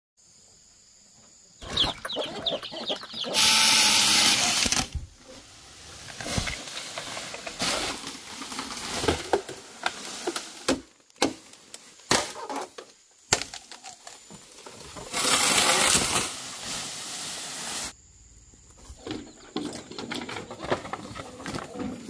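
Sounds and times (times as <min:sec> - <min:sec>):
hen clucking: 0:01.6 - 0:04.0
chainsaw cutting bamboo: 0:03.3 - 0:05.0, 0:15.1 - 0:16.4
rustling: 0:04.3 - 0:13.0.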